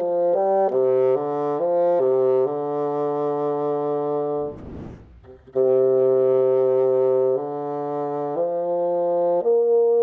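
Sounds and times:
bassoon long held notes: 0.0 - 4.5, 5.2 - 10.0
soft rush of air: 4.4 - 5.6.

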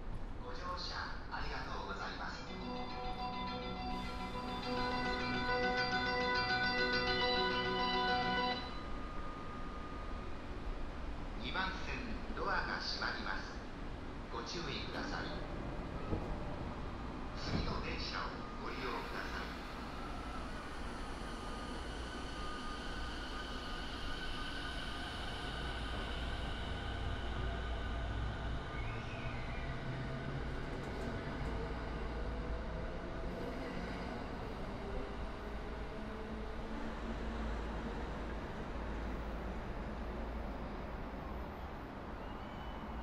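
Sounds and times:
electric train inverter whining: 2.3 - 11.4, 15.1 - 43.0
wheels rumbling on rail: 13.0 - 43.0.

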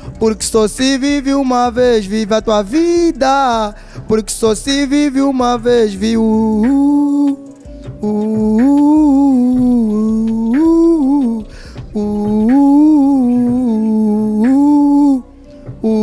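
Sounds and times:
music backing track: 0.0 - 16.0
man humming into microphone: 0.1 - 16.0.

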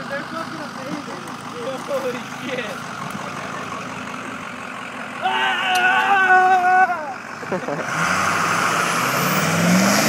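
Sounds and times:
diesel pickup engine idling: 0.0 - 8.9.

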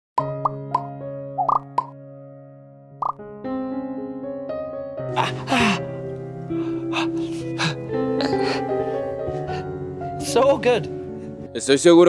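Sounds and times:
cartoon pop sound effects: 0.2 - 2.0, 3.0 - 3.2.

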